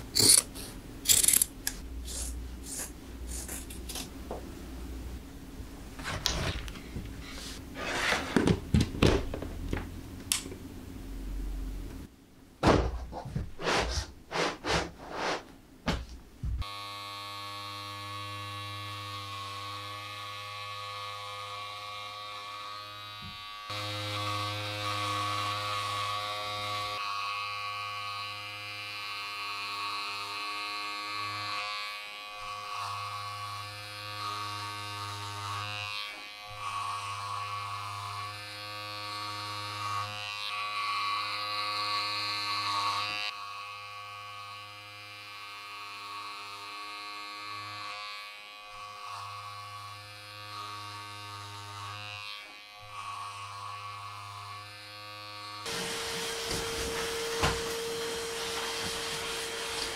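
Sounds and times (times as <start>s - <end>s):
electric clipper buzzing: 0.0s - 4.1s, 16.6s - 59.9s
vacuum cleaner hiss: 55.6s - 59.9s.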